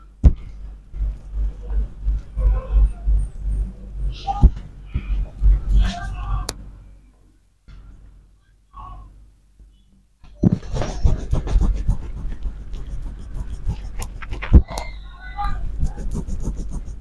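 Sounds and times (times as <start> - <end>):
hands rubbing damp hair: 10.6 - 14.6, 15.6 - 17.0.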